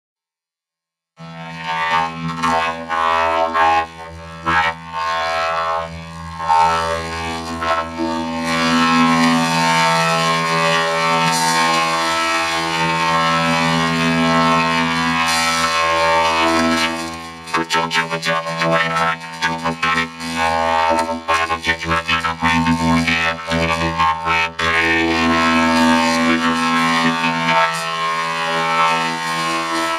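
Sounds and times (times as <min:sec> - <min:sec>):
robotic droning voice effect: 0:01.2 - 0:29.9.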